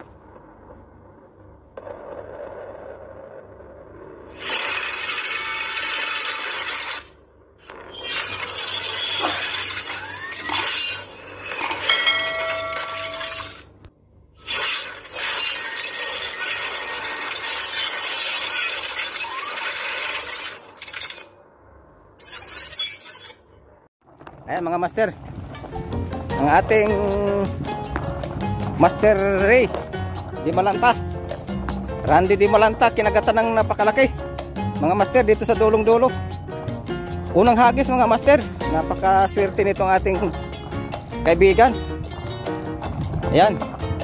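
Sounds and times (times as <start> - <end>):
glass shattering: 7.9 - 13.8, 14.4 - 21.4.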